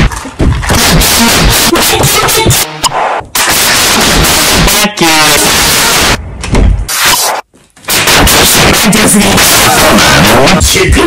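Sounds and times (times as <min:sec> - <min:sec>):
distorted effects remix: 0:00.0 - 0:11.0.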